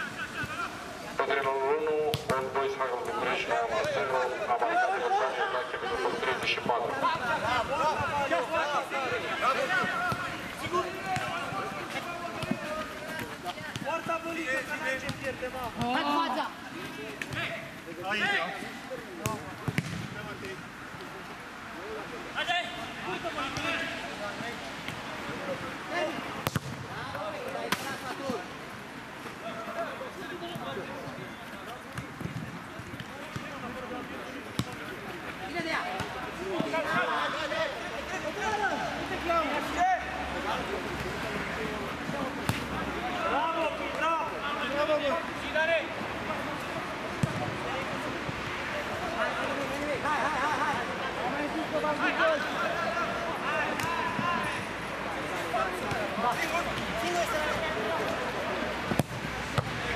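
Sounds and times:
players calling out: 0.0s - 28.5s
football being kicked: 19.2s - 20.1s, 26.4s - 26.8s, 47.2s - 47.4s, 58.9s - 59.8s.

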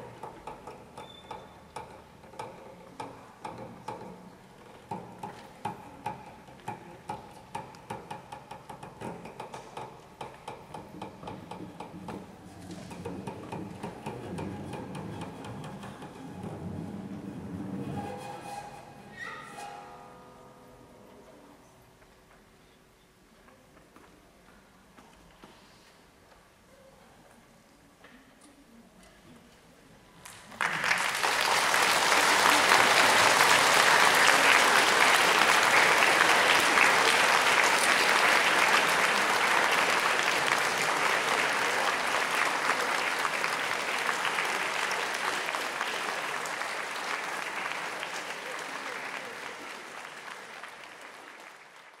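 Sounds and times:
audience applause: 30.3s - 52.0s.

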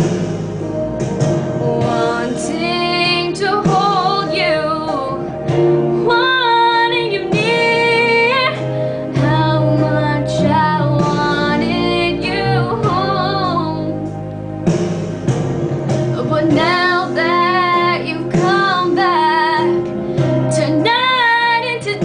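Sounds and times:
karaoke backing track: 0.0s - 22.0s
woman singing a slow ballad: 1.6s - 14.2s, 16.1s - 22.0s.

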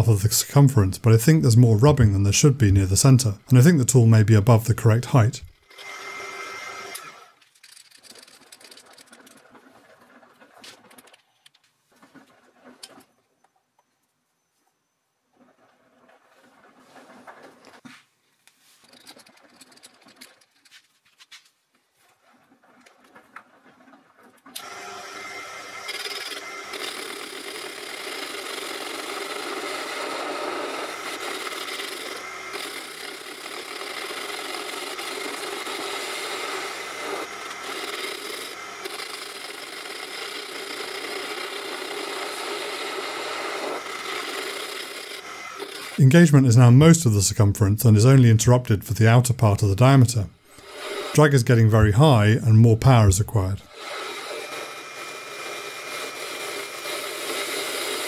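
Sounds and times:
lathe motor whine: 5.6s - 7.3s, 24.6s - 46.0s, 50.5s - 51.2s, 53.7s - 58.0s
lathe cutting steel scraping: 24.6s - 46.3s, 49.0s - 51.7s, 52.9s - 58.0s.

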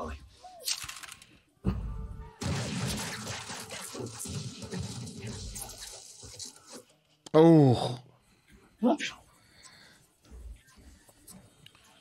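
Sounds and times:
crackling gunfire: 2.4s - 6.6s.

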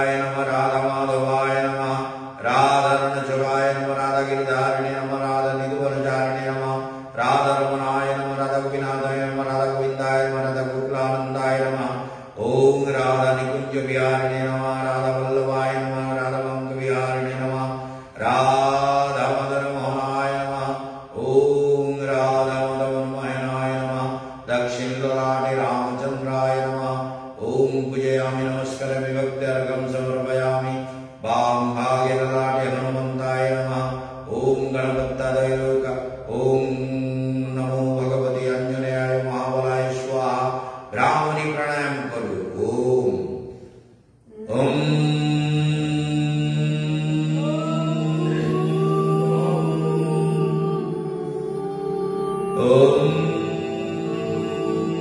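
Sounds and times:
man chanting: 0.0s - 55.0s
breaths: 6.8s - 7.2s, 11.9s - 12.4s, 17.7s - 18.2s, 24.1s - 24.5s, 30.8s - 31.2s, 40.5s - 41.0s, 43.4s - 44.3s.

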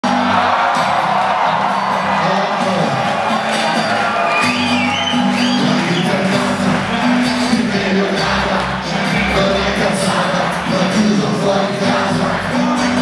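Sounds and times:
audience cheering: 0.0s - 13.0s
live rock band playing: 0.0s - 13.0s.

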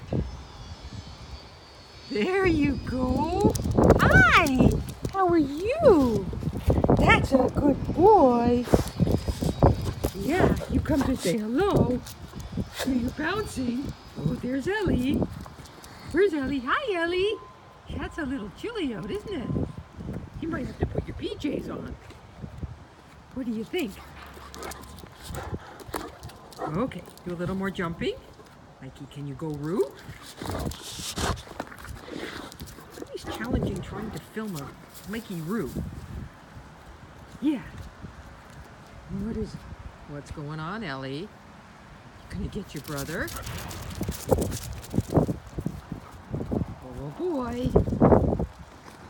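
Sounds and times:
dog footfalls on brick pavers: 3.0s - 16.2s, 23.2s - 28.6s, 29.5s - 35.9s, 42.7s - 49.0s.

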